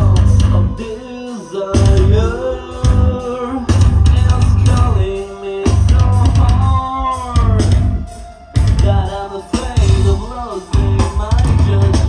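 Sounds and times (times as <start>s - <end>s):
metal band playing live: 0.0s - 12.0s
singer holding notes: 0.0s - 12.0s.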